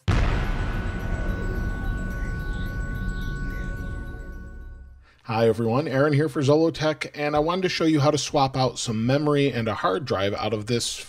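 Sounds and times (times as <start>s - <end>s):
booming hit: 0.0s - 5.1s
sustained electronic chord: 0.0s - 5.1s.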